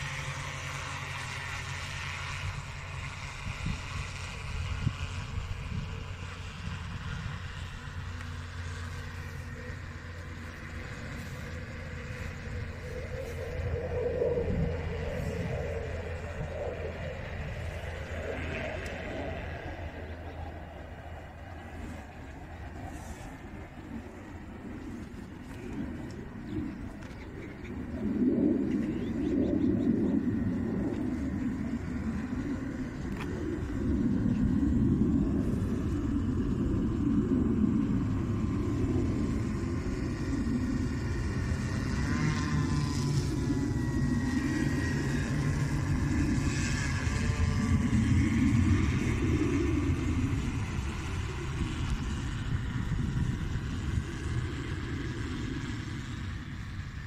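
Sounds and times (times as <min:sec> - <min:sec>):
drone motors and propellers droning: 0:00.0 - 0:57.0.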